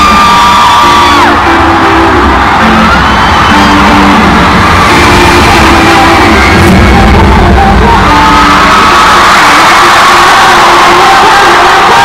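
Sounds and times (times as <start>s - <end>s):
crowd screaming and cheering: 0.0s - 12.0s
loud amplified pop music with singing: 0.0s - 12.0s.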